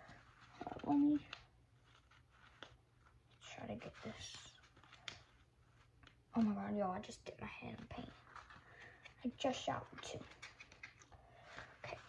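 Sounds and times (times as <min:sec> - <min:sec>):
person whispering: 0:03.4 - 0:04.6, 0:11.7 - 0:12.0.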